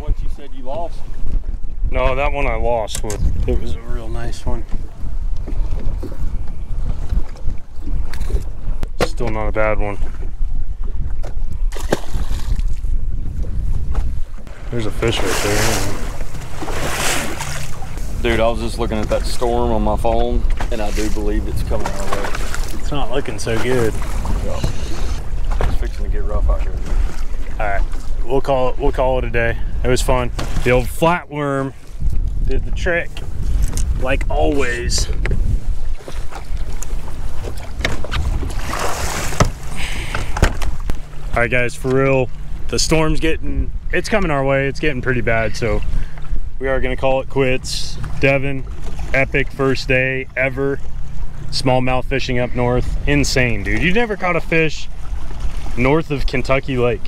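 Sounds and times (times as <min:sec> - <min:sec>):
water around boat: 0:00.0 - 0:57.0
wind buffeting microphone: 0:00.0 - 0:57.0.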